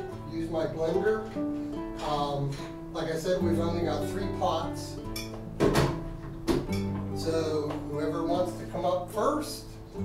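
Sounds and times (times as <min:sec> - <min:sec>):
acoustic guitar strumming: 0:00.0 - 0:10.0
sharp knocks: 0:05.2 - 0:07.1.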